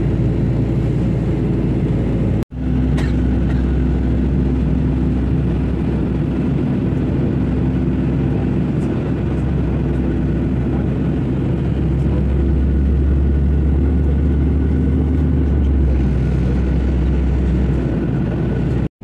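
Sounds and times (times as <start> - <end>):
jet engine cabin rumble: 0.0 - 18.9.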